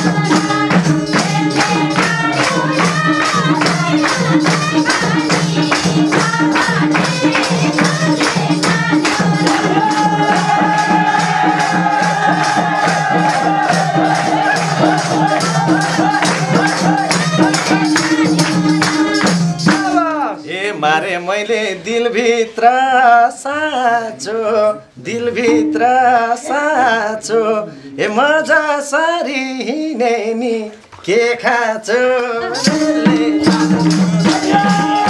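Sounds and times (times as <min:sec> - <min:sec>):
percussion beat: 0:00.0 - 0:21.6, 0:25.1 - 0:27.3, 0:31.4 - 0:35.0
folk singing: 0:00.0 - 0:35.0.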